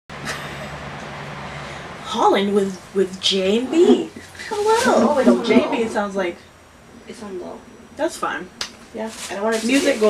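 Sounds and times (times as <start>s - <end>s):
low hum: 1.1s - 8.9s
even hiss: 3.1s - 10.0s.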